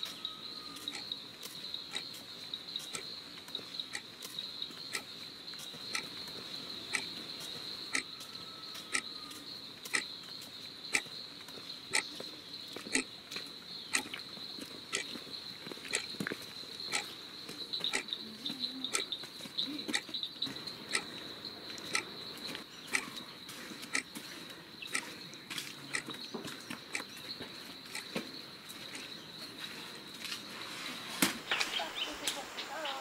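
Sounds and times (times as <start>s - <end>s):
sharp ticks: 0.0s - 10.1s, 10.9s - 11.2s, 11.9s - 13.1s, 13.8s - 14.2s, 14.9s - 15.2s, 15.9s - 18.2s, 18.9s - 19.2s, 19.9s - 20.2s, 20.8s - 24.2s, 24.8s - 29.3s.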